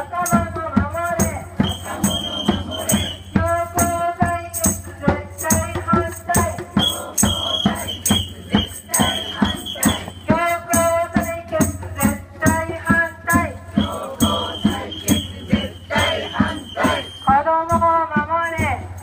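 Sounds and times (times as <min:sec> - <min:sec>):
jingling tambourine: 0:00.0 - 0:19.0
shakers: 0:00.0 - 0:19.0
marchers chanting: 0:01.6 - 0:03.4, 0:06.4 - 0:11.0, 0:12.7 - 0:17.3.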